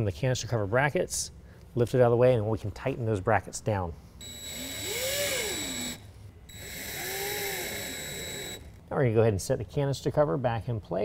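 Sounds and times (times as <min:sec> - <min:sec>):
cordless drill driving screws: 0:04.2 - 0:08.8.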